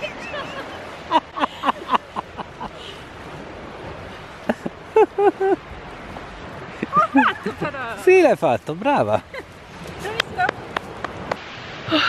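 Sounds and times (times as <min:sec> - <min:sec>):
sea and wind hiss: 0:00.0 - 0:12.0.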